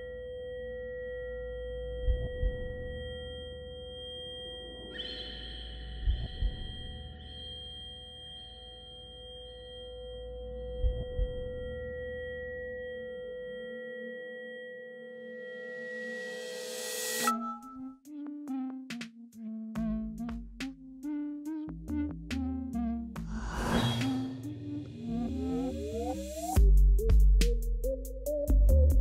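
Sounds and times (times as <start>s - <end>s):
low rumble: 23.2s - 26.0s
high shimmering tone: 23.3s - 26.4s.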